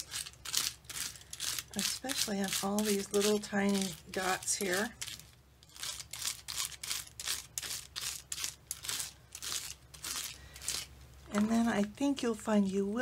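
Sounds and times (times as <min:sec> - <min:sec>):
brush scrubbing over metal: 0:00.0 - 0:11.6.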